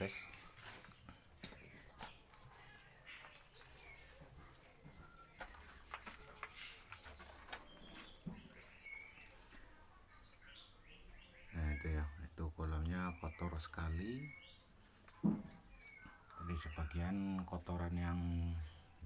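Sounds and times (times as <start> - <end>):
faint bird chirps: 0.0 - 19.0.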